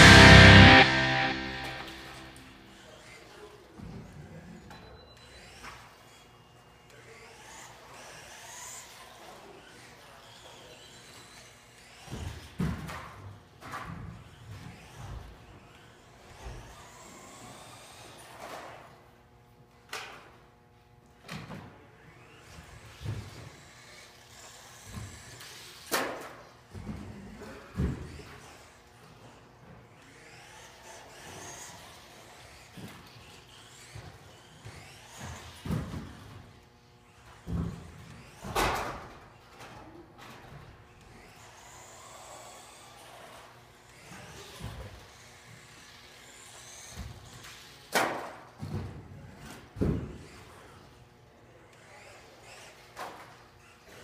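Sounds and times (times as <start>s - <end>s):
toy car motor whining: 5.2s - 13.0s, 13.7s - 18.8s, 28.1s - 36.5s, 39.5s - 47.8s, 49.4s - 54.0s.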